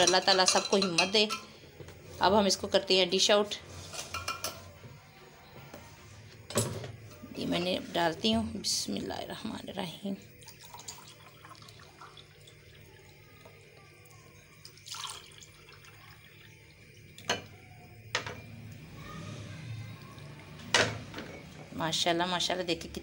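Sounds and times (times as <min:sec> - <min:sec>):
liquid trickling into glass: 0:10.2 - 0:17.6.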